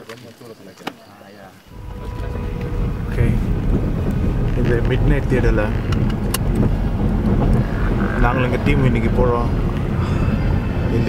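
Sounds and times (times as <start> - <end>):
car engine and tyre rumble: 1.7 - 11.0.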